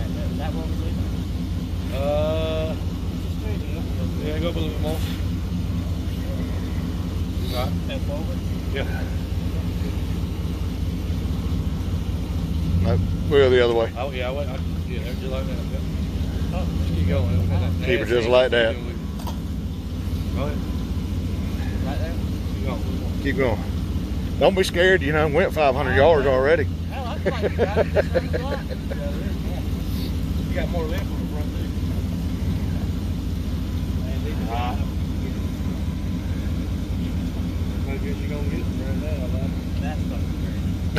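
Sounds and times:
truck engine running at low revs: 0.0s - 40.9s.

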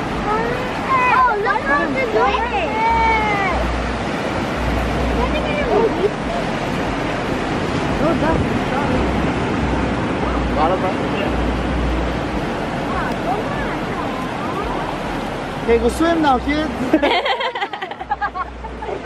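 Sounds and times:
wind rumbling on microphone: 0.0s - 15.7s
ocean surf on beach: 0.0s - 19.0s.

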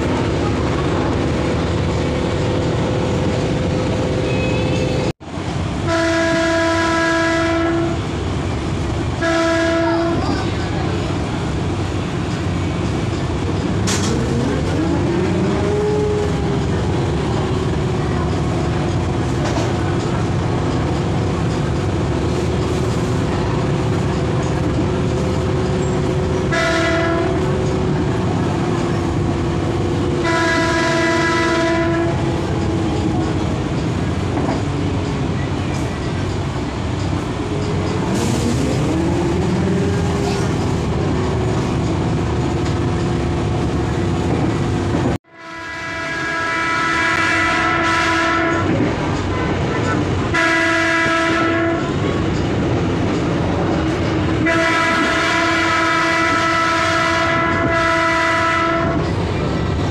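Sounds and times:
train wheel noise: 0.0s - 59.9s
train horn blasts: 5.8s - 8.1s, 9.1s - 10.4s, 26.4s - 27.7s, 30.1s - 33.1s, 45.3s - 52.0s, 54.4s - 59.2s
diesel engine drone: 10.5s - 45.2s.

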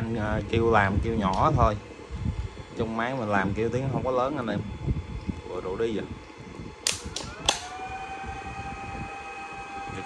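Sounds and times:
inverter high-pitched whine: 0.0s - 10.0s
inverter switch clicks: 1.2s - 1.5s, 6.8s - 7.8s.

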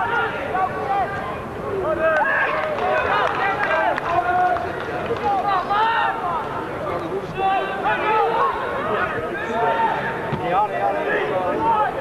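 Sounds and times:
people shouting and calling: 5.2s - 6.6s, 7.2s - 12.0s.

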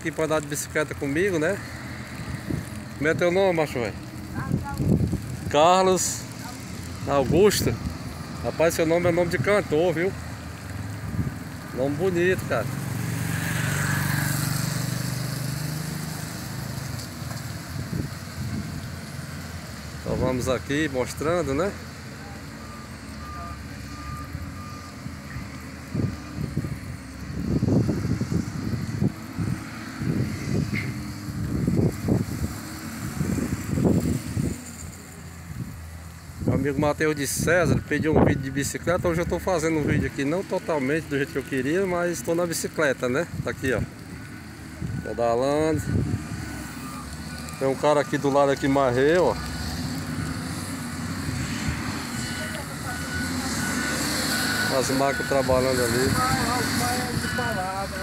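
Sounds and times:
wind buffeting microphone: 4.2s - 5.6s, 25.9s - 34.6s
vehicle reversing alarm beeps: 20.8s - 26.5s, 37.1s - 42.5s, 44.8s - 58.0s.

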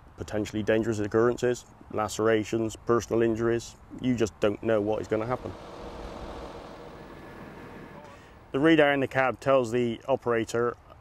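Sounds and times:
diesel engine rumbling: 4.4s - 9.2s.

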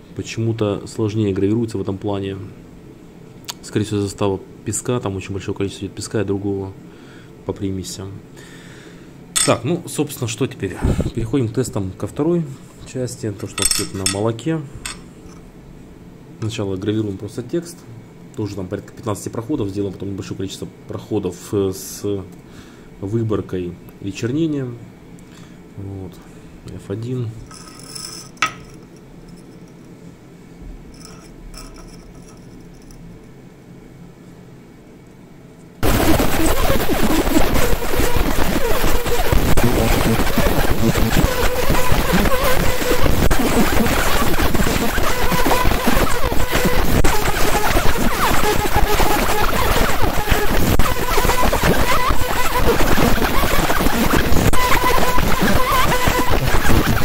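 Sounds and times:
faint hums: 0.0s - 57.0s
laser crackling hiss: 35.8s - 57.0s.

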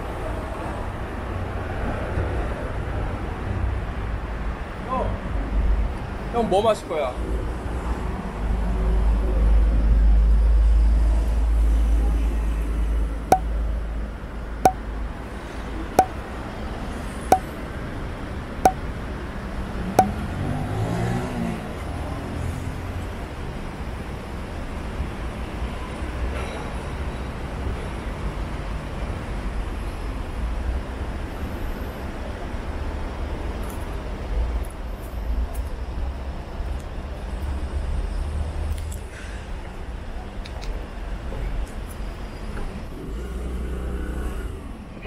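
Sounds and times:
street traffic: 0.0s - 45.0s.

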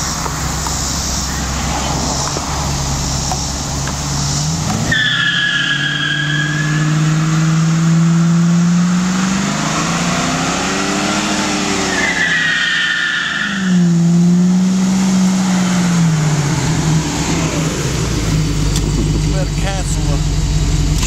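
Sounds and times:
car engine revving: 0.0s - 21.0s
tyre squeal: 3.0s - 7.0s, 11.7s - 14.0s.

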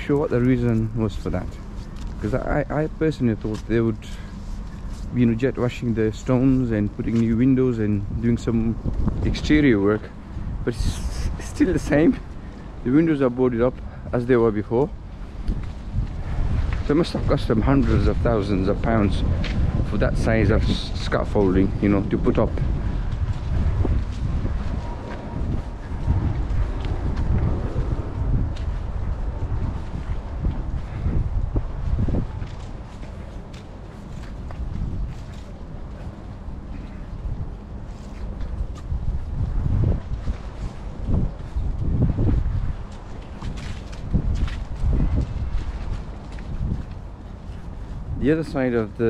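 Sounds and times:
wind buffeting the microphone: 0.0s - 49.0s.

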